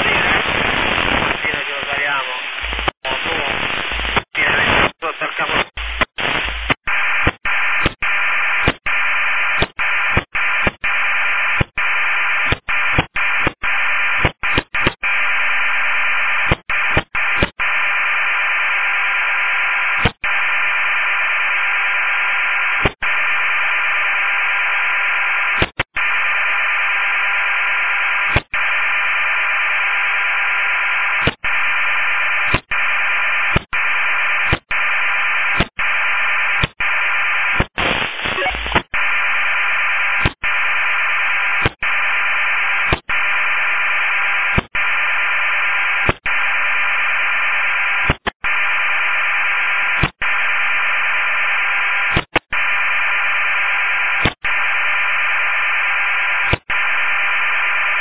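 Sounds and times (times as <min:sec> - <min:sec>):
radio hiss: 0:00.0 - 0:58.0.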